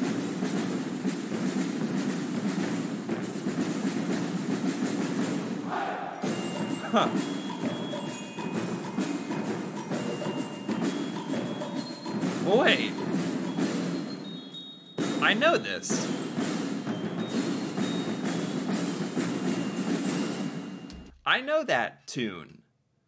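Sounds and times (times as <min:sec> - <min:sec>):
ringing mallet percussion notes: 0:06.2 - 0:21.0.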